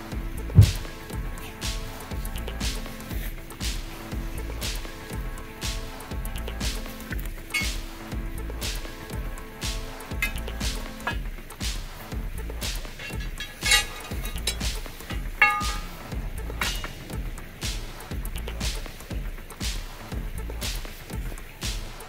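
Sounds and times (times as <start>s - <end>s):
background music with steady beat: 0.0s - 22.0s
sharp knocks: 0.5s - 1.0s, 12.9s - 17.9s.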